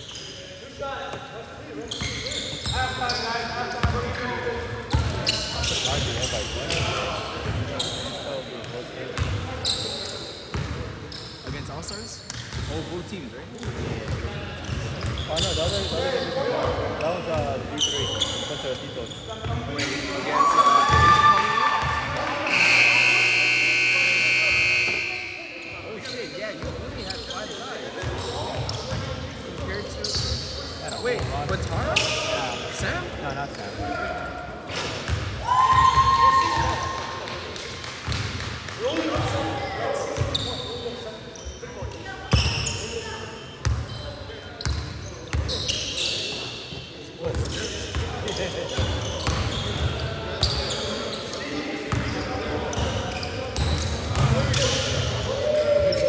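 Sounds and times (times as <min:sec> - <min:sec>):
players' voices echoing: 0:00.3 - 0:56.0
sneakers squeaking on hardwood floor: 0:01.8 - 0:04.2, 0:04.8 - 0:08.4, 0:09.2 - 0:12.8, 0:13.6 - 0:20.1, 0:21.8 - 0:33.7, 0:40.1 - 0:55.1.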